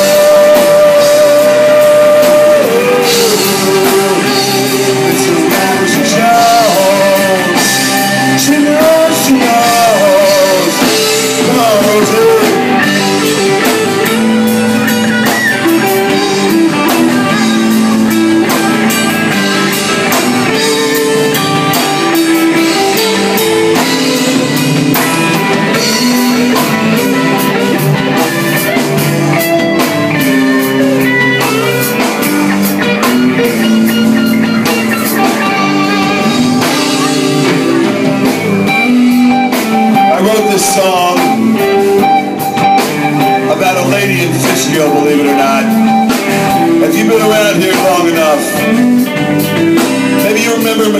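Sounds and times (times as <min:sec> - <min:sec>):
bass guitar: 0:00.0 - 0:50.9
drum kit: 0:00.0 - 0:50.9
electric guitar: 0:00.0 - 0:50.9.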